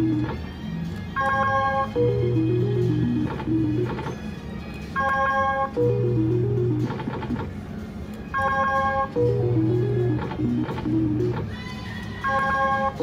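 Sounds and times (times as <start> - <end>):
slot machine spin tune: 0.0 - 0.5, 1.1 - 7.6, 8.3 - 11.5, 12.2 - 13.0.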